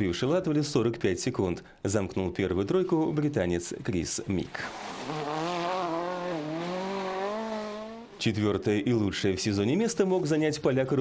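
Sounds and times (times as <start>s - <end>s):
rally car engine revving: 4.6s - 8.2s.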